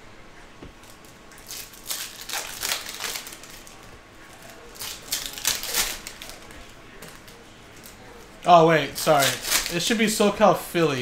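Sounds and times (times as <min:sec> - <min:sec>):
foil card pack crinkling: 0:00.9 - 0:08.0, 0:08.8 - 0:10.2.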